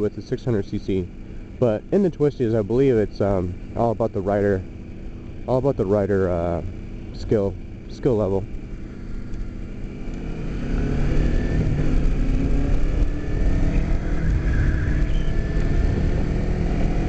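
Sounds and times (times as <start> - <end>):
motorcycle engine accelerating: 0.0 - 17.0.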